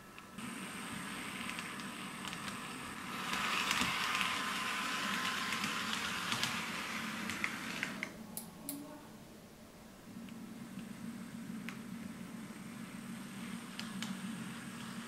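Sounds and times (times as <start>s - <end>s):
model locomotive motor whirring: 0.2s - 8.1s, 12.4s - 15.0s.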